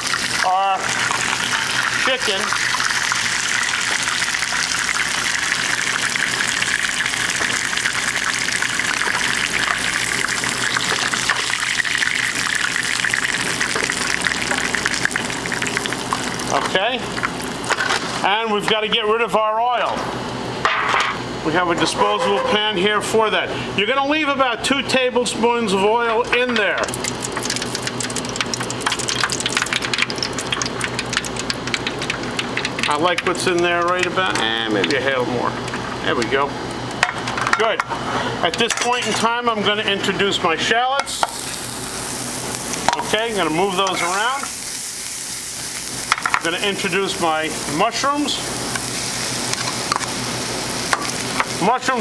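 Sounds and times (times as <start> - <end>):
chicken sizzling in hot oil: 0.0 - 18.1, 26.8 - 36.0, 41.0 - 52.0.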